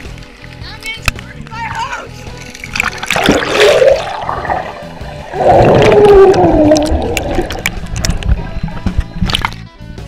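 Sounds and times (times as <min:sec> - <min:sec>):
water splashing and churning: 0:01.7 - 0:09.7
background music with regular beat: 0:07.3 - 0:10.0.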